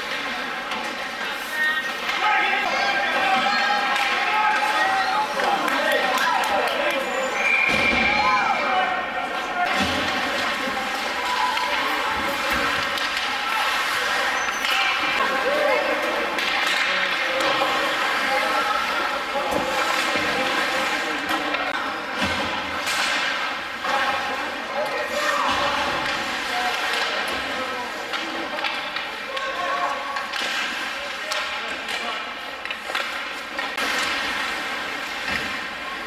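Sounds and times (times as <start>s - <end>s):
spectators' voices: 0.0s - 36.0s
hockey sticks and puck knocking: 28.1s - 29.5s, 30.2s - 34.4s.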